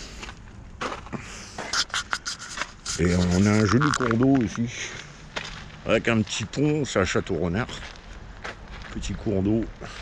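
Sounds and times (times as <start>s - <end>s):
footsteps on gravel: 0.0s - 10.0s.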